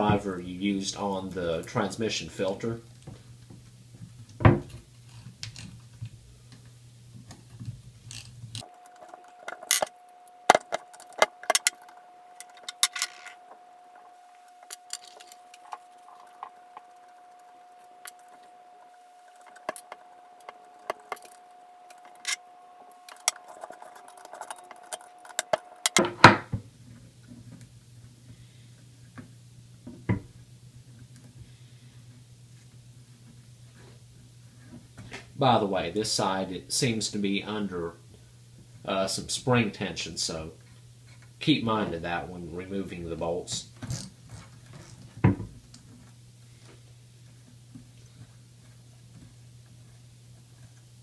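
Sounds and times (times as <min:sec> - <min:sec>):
faint steady tone: 0:08.6 - 0:34.8.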